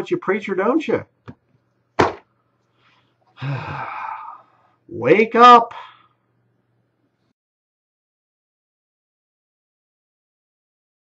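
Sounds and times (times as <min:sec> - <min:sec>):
man sighing heavily: 0:03.4 - 0:04.6.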